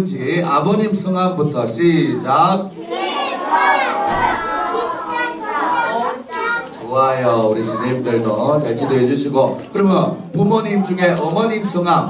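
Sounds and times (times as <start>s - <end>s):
children calling out: 2.7s - 9.2s.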